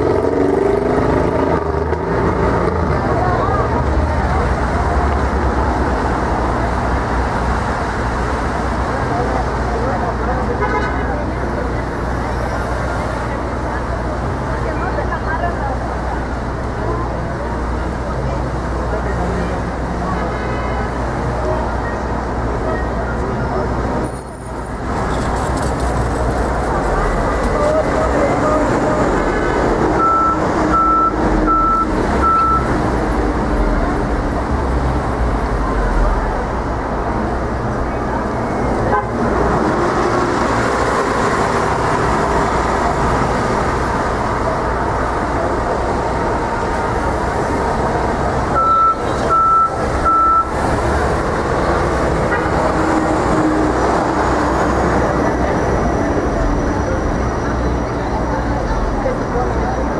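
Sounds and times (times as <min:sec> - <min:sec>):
city street traffic: 0:00.0 - 0:59.9
high electronic beeps: 0:30.0 - 0:32.7, 0:48.6 - 0:50.6.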